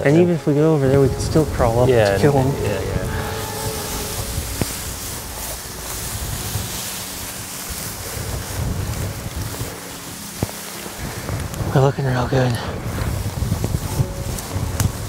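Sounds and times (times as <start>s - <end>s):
dry grass rustling: 0.0s - 15.0s
wind rushing over microphone: 0.0s - 15.0s.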